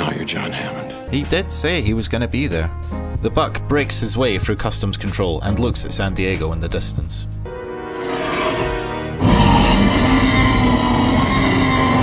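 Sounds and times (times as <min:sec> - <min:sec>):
dinosaur roar: 0:08.1 - 0:12.0.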